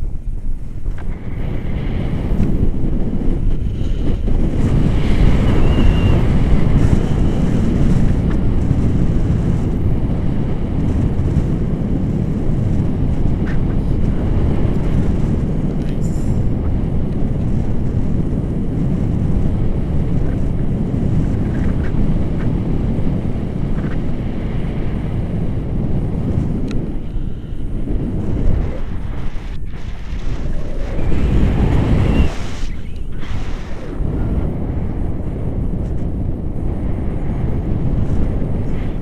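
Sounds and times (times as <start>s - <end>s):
wind rushing over microphone: 0.0s - 39.0s.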